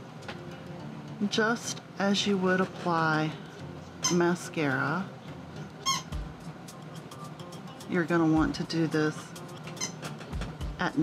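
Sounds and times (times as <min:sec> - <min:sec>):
high-pitched squeak: 0:05.8 - 0:06.2, 0:09.8 - 0:10.2.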